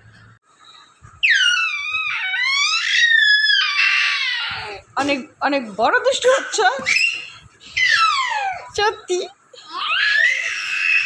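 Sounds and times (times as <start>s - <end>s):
baby squealing cry: 1.2s - 4.8s, 6.8s - 8.7s, 9.6s - 11.0s.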